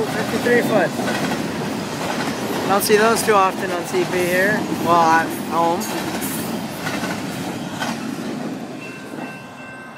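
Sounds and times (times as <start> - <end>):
train wheels on rails: 0.0 - 9.9.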